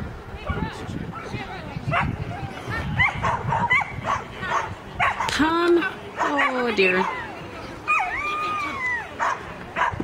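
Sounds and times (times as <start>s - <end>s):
dog barking: 1.9s - 2.1s, 3.0s - 5.3s, 6.2s - 7.2s, 9.2s - 10.0s.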